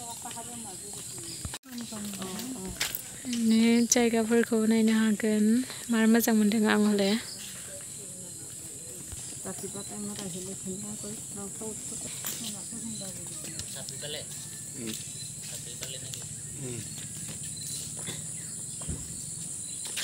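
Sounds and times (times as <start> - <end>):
high-pitched insect drone: 0.0 - 20.0
faint talking: 16.6 - 16.9.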